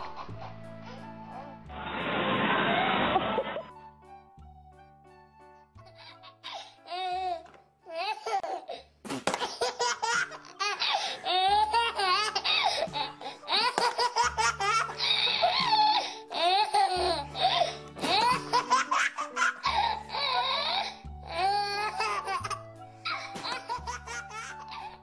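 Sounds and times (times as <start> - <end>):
baby laughing: 0.0 - 1.5, 7.9 - 25.0.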